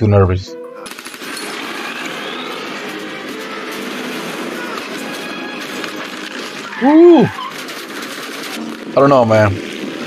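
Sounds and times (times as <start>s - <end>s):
dense action film noise: 0.8s - 10.0s.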